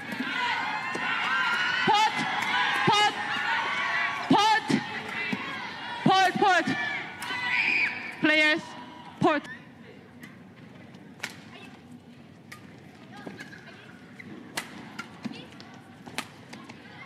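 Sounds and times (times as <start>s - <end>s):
rackets hitting shuttlecock: 14.4s - 16.8s.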